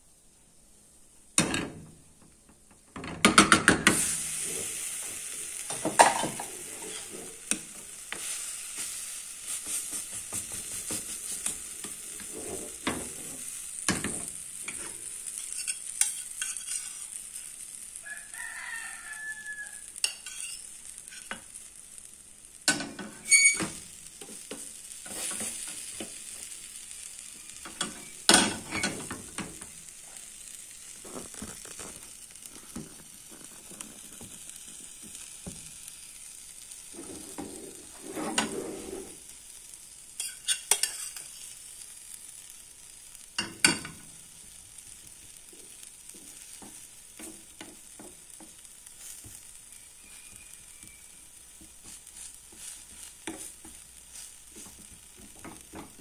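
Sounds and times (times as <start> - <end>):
food sizzling in a frying pan: 0.0 - 56.0
metal spoon scraping a pan: 3.8 - 17.8, 19.9 - 21.6, 22.7 - 26.2, 27.5 - 30.2, 36.6 - 39.3, 40.2 - 41.6.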